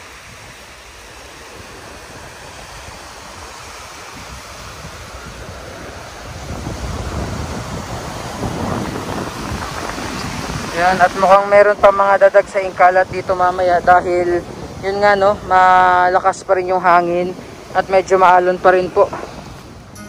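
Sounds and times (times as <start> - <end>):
small waves washing onto sand: 0.0 - 20.0
wind buffeting microphone: 0.0 - 20.0.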